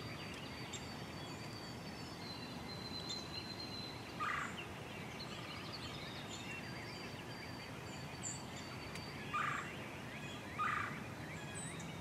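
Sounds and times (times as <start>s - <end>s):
songbirds singing: 0.0s - 12.0s.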